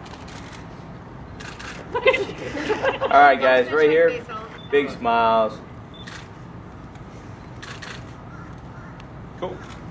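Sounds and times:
low outdoor background: 0:00.0 - 0:09.9
camera shutter clicking: 0:01.4 - 0:01.8, 0:06.0 - 0:06.3, 0:07.6 - 0:08.1.

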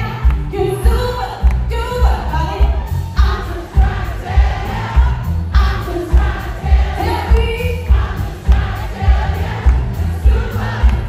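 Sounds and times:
heavy low beat: 0:00.0 - 0:11.0
live band music: 0:00.0 - 0:11.0
voices singing: 0:03.2 - 0:11.0.

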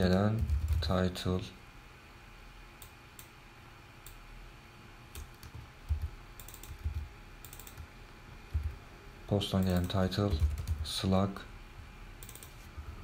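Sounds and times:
computer keyboard typing: 0:00.0 - 0:01.0, 0:05.2 - 0:07.9, 0:08.5 - 0:08.8, 0:09.5 - 0:11.0, 0:12.2 - 0:12.6.

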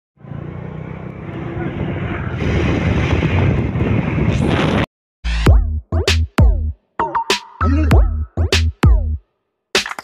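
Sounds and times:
road traffic: 0:00.2 - 0:04.3.

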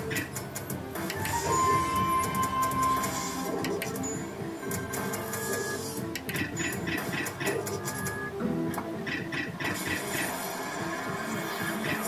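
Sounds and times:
rapid slot machine reel clicks: 0:00.0 - 0:01.5
background game tune: 0:00.0 - 0:12.0.

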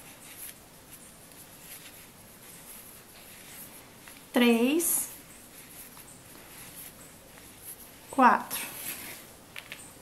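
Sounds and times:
faint rustling of twine: 0:00.0 - 0:10.0.

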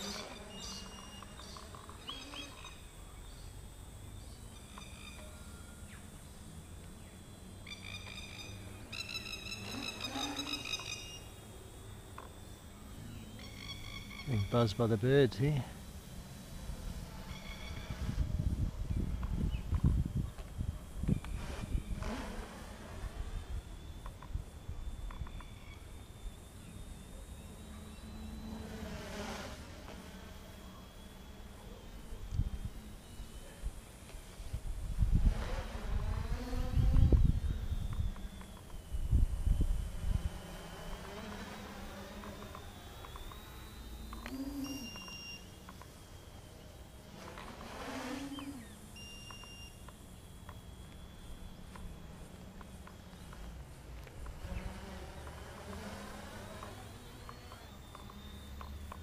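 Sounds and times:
drone propeller buzz: 0:00.0 - 0:59.0
wind rumble on microphone: 0:16.8 - 0:25.4, 0:34.4 - 0:40.5.

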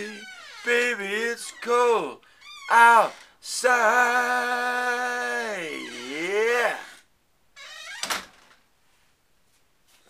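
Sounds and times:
man singing: 0:00.0 - 0:07.0.

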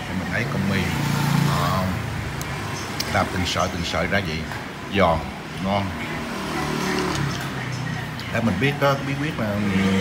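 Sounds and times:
street traffic passing: 0:00.0 - 0:10.0.

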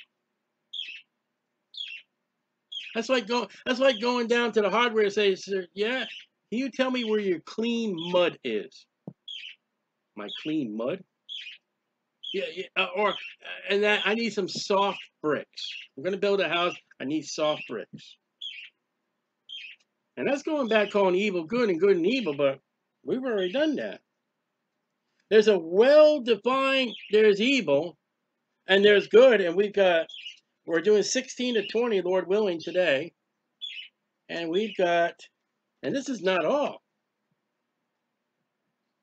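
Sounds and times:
bird chirping: 0:00.0 - 0:24.1, 0:25.0 - 0:36.8.

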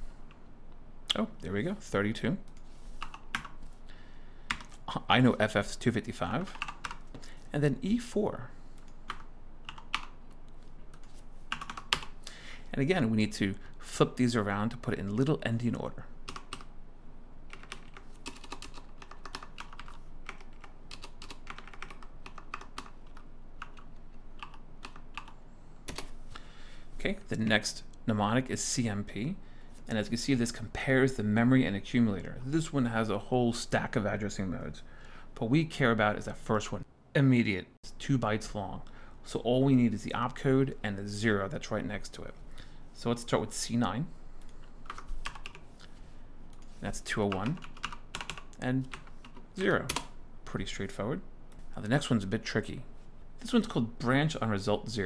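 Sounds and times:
typing on computer keyboard: 0:06.5 - 0:07.1, 0:08.8 - 0:10.2, 0:10.9 - 0:12.2, 0:16.3 - 0:16.7, 0:17.5 - 0:26.1, 0:47.4 - 0:50.1.

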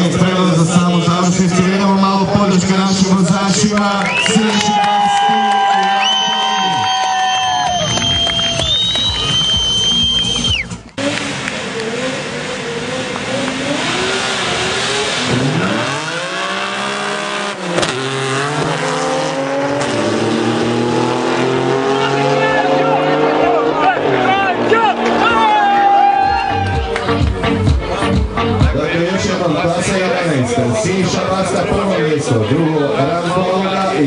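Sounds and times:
drag racing cars revving: 0:00.0 - 0:05.1, 0:07.9 - 0:27.0
cars accelerating away: 0:00.0 - 0:27.7.

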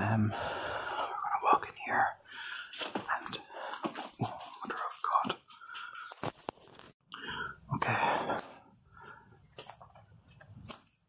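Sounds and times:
man whispering: 0:00.0 - 0:06.0, 0:07.5 - 0:08.7.

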